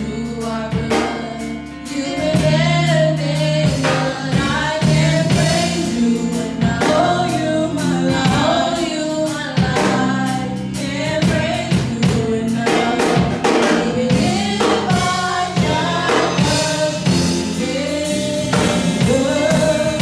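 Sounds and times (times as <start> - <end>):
instrumental backing with beat: 0.0 - 20.0
women singing gospel song: 0.0 - 20.0.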